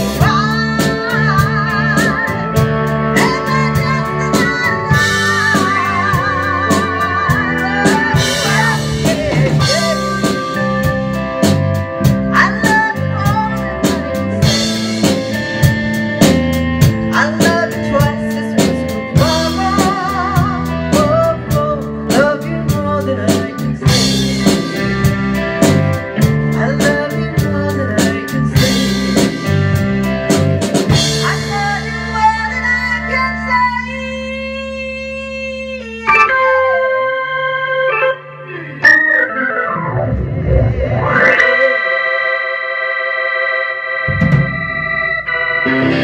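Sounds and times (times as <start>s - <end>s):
guitar sliding pitch glides: 0.0s - 21.0s, 35.3s - 46.0s
bass guitar: 0.0s - 46.0s
drums: 0.0s - 46.0s
sustained keyboard chords: 0.0s - 46.0s.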